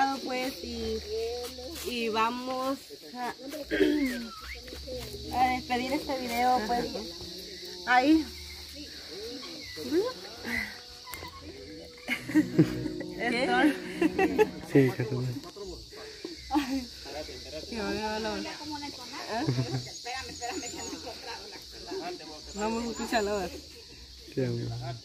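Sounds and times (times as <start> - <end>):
people talking: 0.0 - 15.8
cicadas droning: 0.0 - 25.0.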